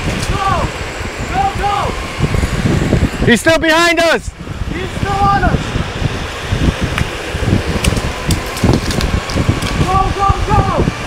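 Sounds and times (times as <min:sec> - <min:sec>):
wind buffeting microphone: 0:00.0 - 0:11.0
skateboard wheels rolling on pavement: 0:04.9 - 0:11.0.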